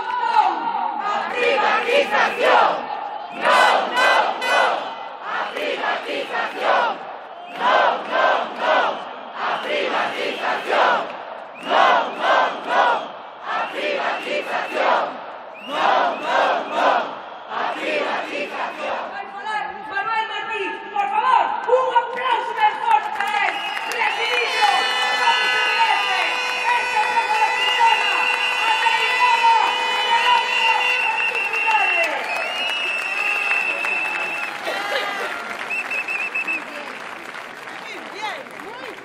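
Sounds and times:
crowd chanting: 0:00.0 - 0:19.4.

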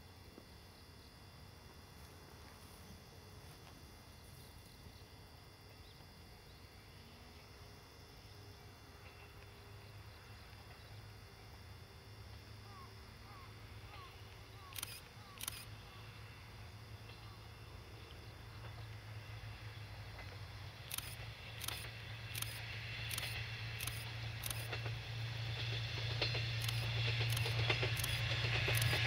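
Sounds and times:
diesel train engine drone: 0:00.0 - 0:29.0
sharp rail clicks: 0:20.2 - 0:29.0.

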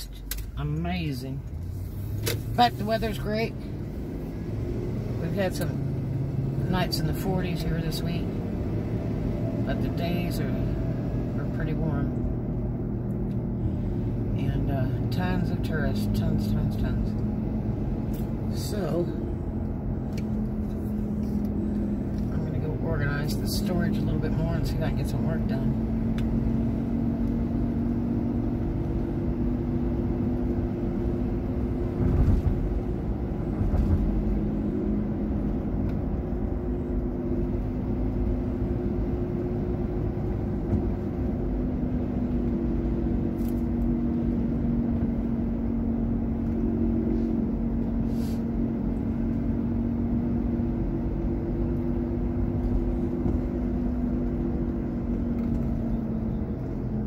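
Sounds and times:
car engine and road rumble: 0:00.0 - 0:57.0.

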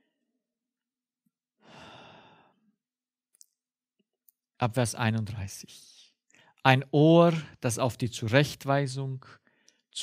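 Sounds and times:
man breathing: 0:01.6 - 0:02.8
man speaking: 0:04.6 - 0:06.0, 0:06.6 - 0:09.3.

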